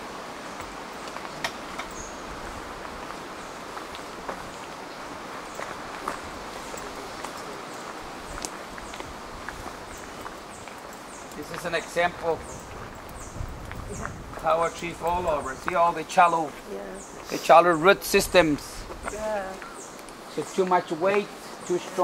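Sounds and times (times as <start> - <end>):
steady background hiss: 0.0 - 22.0
footsteps on gravel: 0.5 - 17.4.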